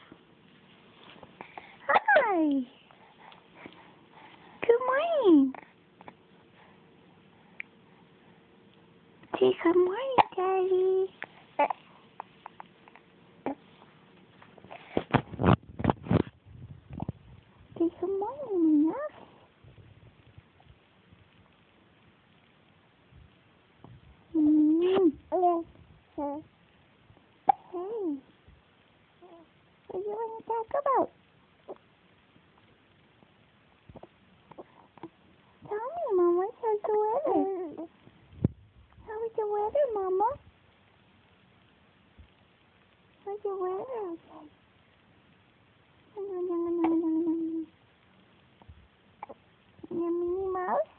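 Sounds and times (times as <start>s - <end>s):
faint room noise: 0.0s - 50.9s
baby cooing: 11.6s - 13.7s, 24.4s - 26.4s, 27.5s - 27.9s, 35.7s - 37.9s.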